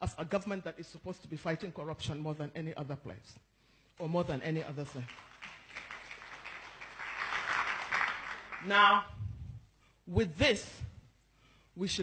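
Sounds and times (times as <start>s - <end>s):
audience applauding: 4.9s - 9.0s.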